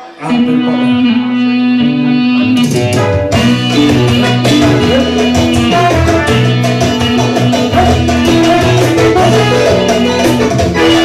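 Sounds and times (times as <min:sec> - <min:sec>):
dance band music: 0:00.0 - 0:11.0
percussion hits: 0:02.4 - 0:11.0.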